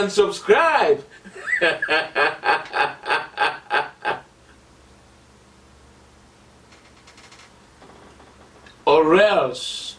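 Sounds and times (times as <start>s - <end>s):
man laughing out loud: 1.2s - 4.3s.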